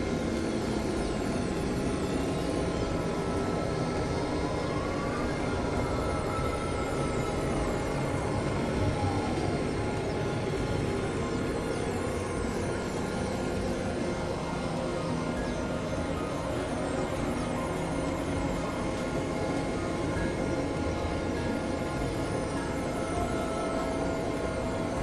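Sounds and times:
sustained synthesizer tones: 0:00.0 - 0:25.0.

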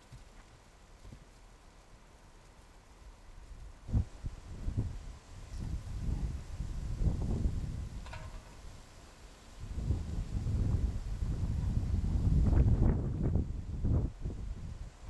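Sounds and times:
wind buffeting microphone: 0:03.6 - 0:08.9, 0:09.6 - 0:15.0.

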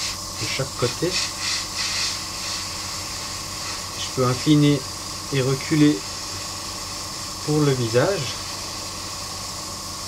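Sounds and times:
airbrush hissing air: 0:00.0 - 0:10.0.

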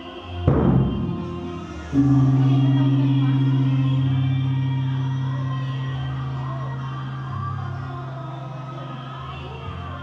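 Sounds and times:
faint melodic instruments: 0:00.0 - 0:10.0
deep struck note ringing: 0:00.5 - 0:07.5.

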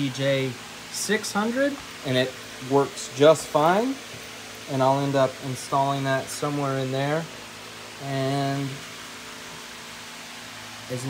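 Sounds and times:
person speaking: 0:00.0 - 0:07.4, 0:08.0 - 0:08.9
background hiss: 0:00.0 - 0:11.0.

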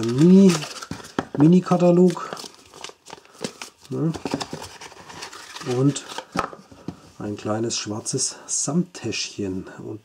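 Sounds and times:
paper and cardboard rustling: 0:00.0 - 0:07.2.

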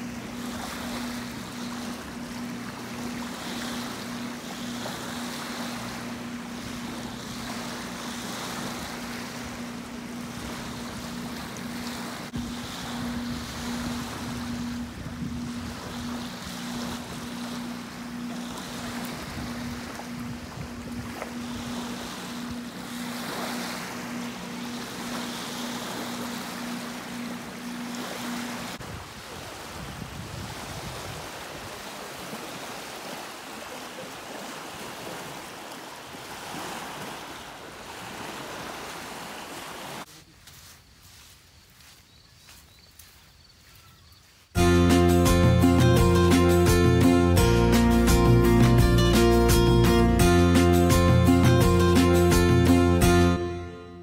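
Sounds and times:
wind on microphone: 0:00.0 - 0:27.3, 0:28.0 - 0:31.8
motorboat engine hum: 0:00.0 - 0:40.1, 0:44.6 - 0:54.0
small waves lapping on shore: 0:00.0 - 0:53.5.

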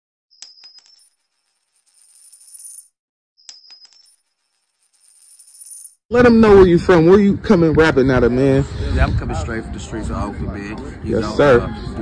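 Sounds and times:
sharp metallic clinks: 0:00.3 - 0:06.0.

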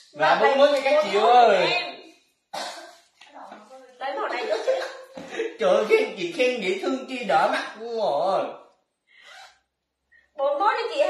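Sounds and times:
woman talking: 0:03.3 - 0:05.0, 0:10.4 - 0:11.0.

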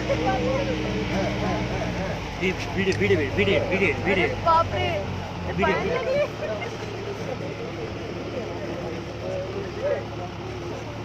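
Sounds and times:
people talking: 0:00.0 - 0:11.0
vehicle engine idling: 0:00.0 - 0:11.0.

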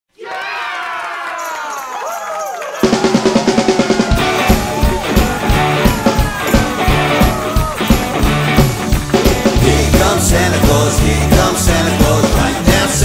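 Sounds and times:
drums and bass: 0:02.8 - 0:13.0.

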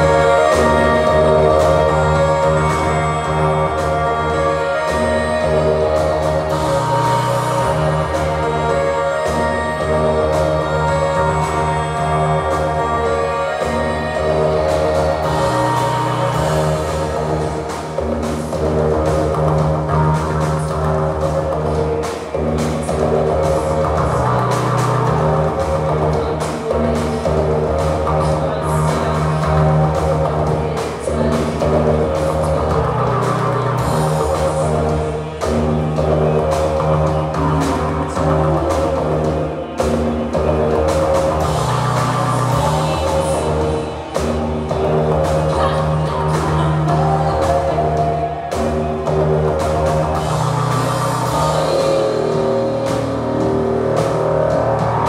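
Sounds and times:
bass line: 0:00.0 - 0:55.0
live band playing: 0:00.0 - 0:55.0.

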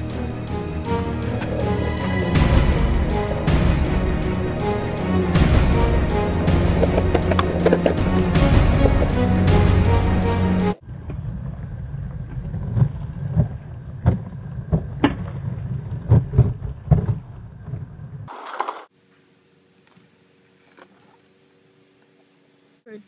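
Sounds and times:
skateboard rolling on pavement: 0:06.4 - 0:08.2, 0:18.3 - 0:18.9.

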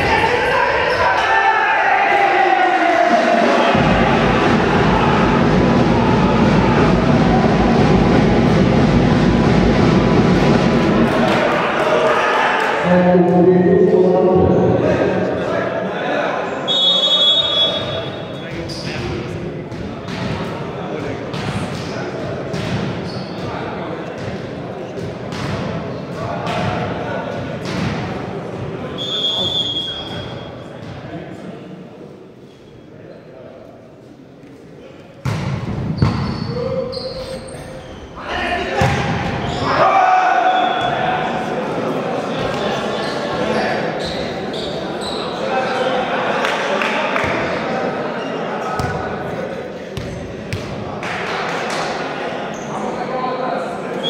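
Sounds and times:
players shouting: 0:00.0 - 0:08.6, 0:10.8 - 0:16.7, 0:38.1 - 0:46.2
players' voices: 0:00.0 - 0:54.0.

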